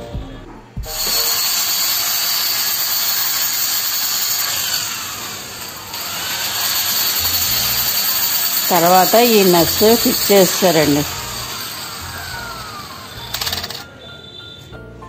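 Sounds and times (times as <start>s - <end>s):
power tool whining: 0.9s - 14.0s.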